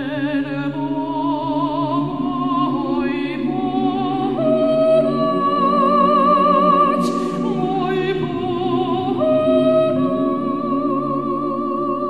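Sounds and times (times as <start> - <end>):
male vocal group singing chords: 0.0 - 12.0
soprano singing with vibrato: 0.0 - 12.0.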